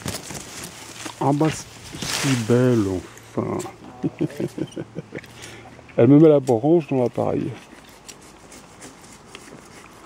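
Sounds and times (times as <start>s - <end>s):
horse rustling in leaves: 0.0s - 3.2s.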